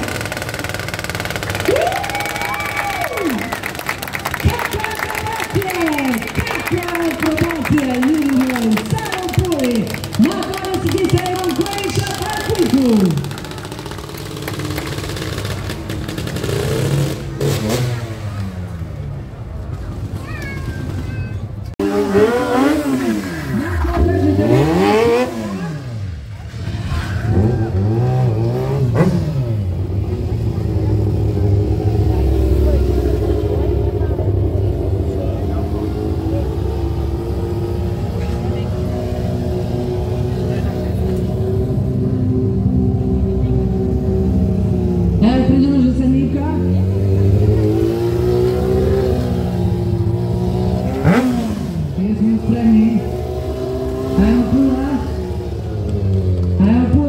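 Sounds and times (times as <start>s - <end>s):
motorbike engines revving: 0.0s - 57.0s.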